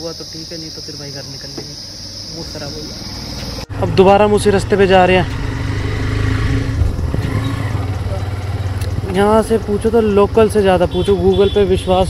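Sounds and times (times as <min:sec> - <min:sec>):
motorcycle engine running: 0:02.9 - 0:12.0.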